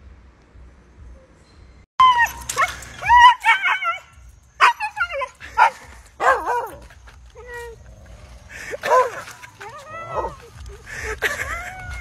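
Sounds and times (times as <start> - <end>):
dog yipping and whining: 2.0 - 6.8, 8.9 - 10.5.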